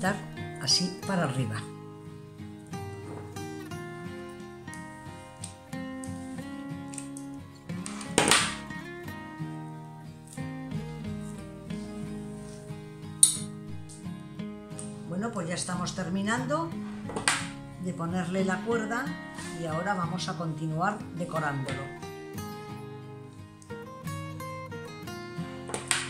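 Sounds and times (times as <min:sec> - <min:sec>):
plucked acoustic guitar music: 0:00.0 - 0:26.0
sharp click: 0:13.2 - 0:14.0.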